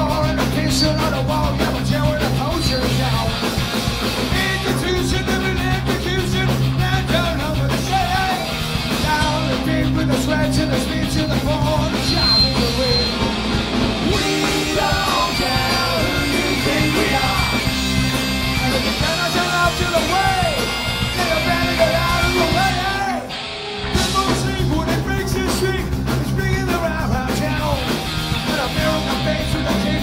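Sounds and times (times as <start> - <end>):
bass and drums: 0.0 - 30.0
electric guitars: 0.0 - 30.0
person singing: 14.0 - 17.8, 18.5 - 23.3, 23.9 - 30.0
bagpipes: 14.2 - 22.7.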